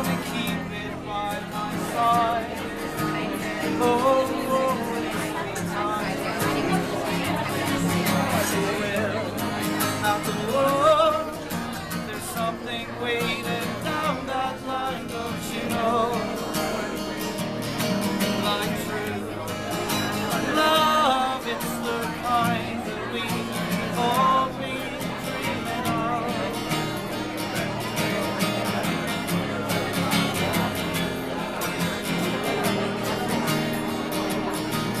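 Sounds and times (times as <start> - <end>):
acoustic guitar folk song: 0.0 - 35.0.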